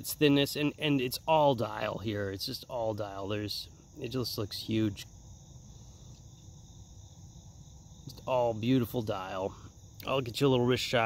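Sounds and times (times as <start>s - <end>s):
insects trilling: 0.0s - 11.0s.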